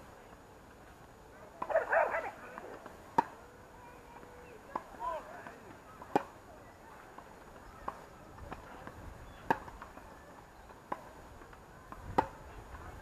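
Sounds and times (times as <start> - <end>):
tennis balls struck by rackets: 1.5 - 13.0.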